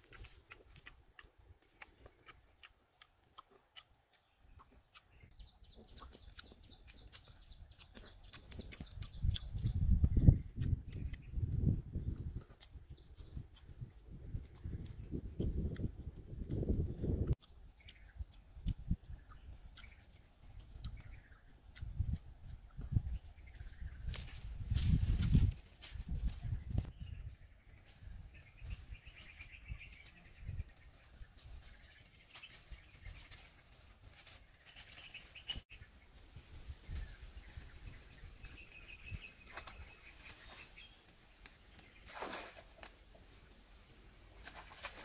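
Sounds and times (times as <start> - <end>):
fruit being bitten: 0.0 - 11.4, 12.2 - 22.9
low thumps and crunches: 4.6 - 35.6, 36.2 - 43.2
vine stems rustling and snapping: 24.0 - 26.4
footsteps in dry undergrowth: 24.0 - 30.2, 30.8 - 35.6.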